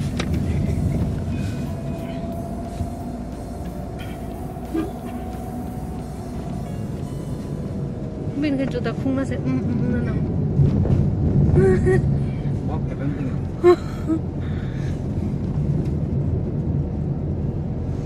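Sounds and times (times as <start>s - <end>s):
car driving rumble inside cabin: 0.0s - 18.0s
people talking: 8.3s - 10.3s.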